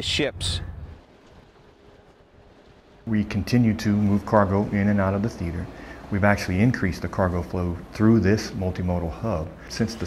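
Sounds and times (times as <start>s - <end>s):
low outdoor background rumble: 0.0s - 10.0s.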